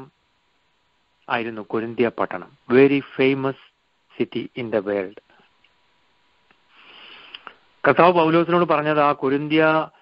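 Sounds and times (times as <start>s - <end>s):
man speaking over telephone: 1.3s - 3.6s, 7.9s - 9.9s
man breathing in over telephone: 6.7s - 7.6s.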